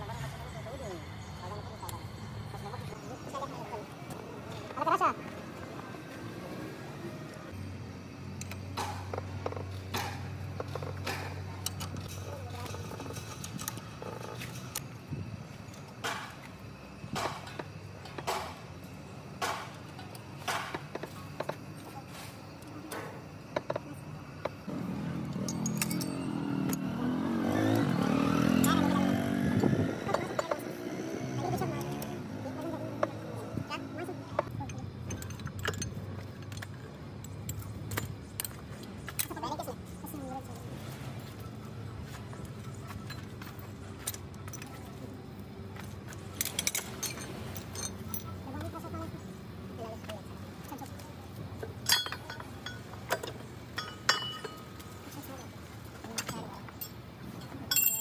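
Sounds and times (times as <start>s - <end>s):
metallic clicks of gears: 24.7s - 28.8s.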